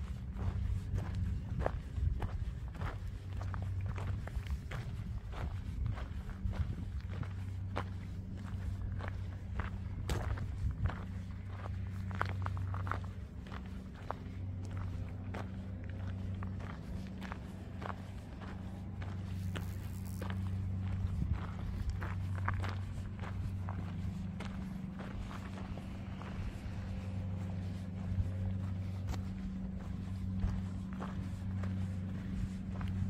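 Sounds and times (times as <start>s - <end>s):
footsteps on gravel: 0.0s - 33.0s
steady low hum: 0.0s - 33.0s.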